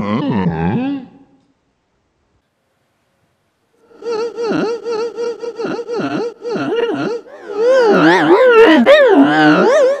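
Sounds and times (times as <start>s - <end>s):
warbling howl-like voice: 3.9s - 10.0s.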